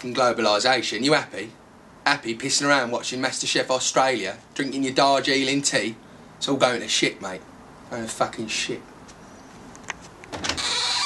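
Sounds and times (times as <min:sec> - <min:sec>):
sliding door runners squealing: 0:10.3 - 0:11.0.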